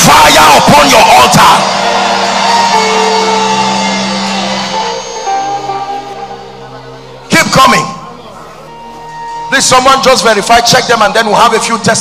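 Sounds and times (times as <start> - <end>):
church band long held chords: 0.0 - 11.4.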